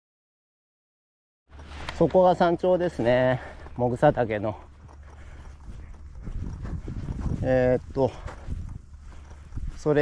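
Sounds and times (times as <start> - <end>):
footsteps on a trail: 1.5 - 10.0.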